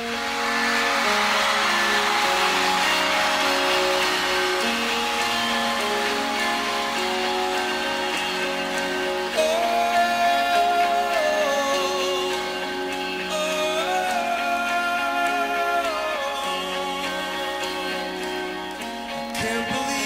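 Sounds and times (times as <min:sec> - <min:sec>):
steady wash of noise: 0:00.0 - 0:11.2
electric guitar ringing notes: 0:00.0 - 0:20.0.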